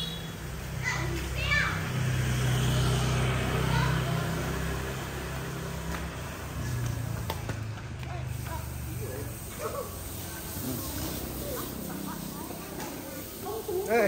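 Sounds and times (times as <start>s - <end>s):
children calling and chattering: 0.0s - 14.0s.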